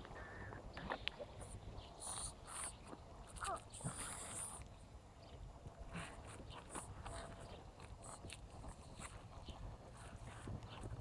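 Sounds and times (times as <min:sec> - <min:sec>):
low wind rumble: 0:00.0 - 0:11.0.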